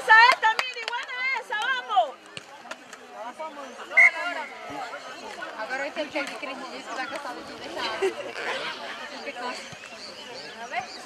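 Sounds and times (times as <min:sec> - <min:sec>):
people shouting and chatter: 0:00.0 - 0:11.0.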